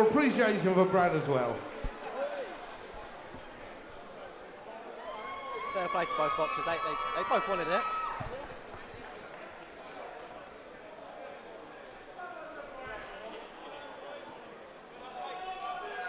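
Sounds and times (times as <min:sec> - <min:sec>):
faint murmur of voices: 0:00.0 - 0:16.0.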